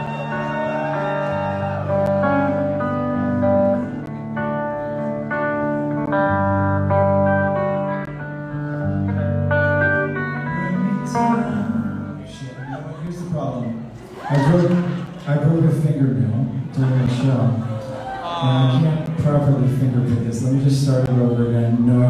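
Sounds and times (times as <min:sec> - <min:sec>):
electric guitar fingerpicking: 0:01.8 - 0:12.8.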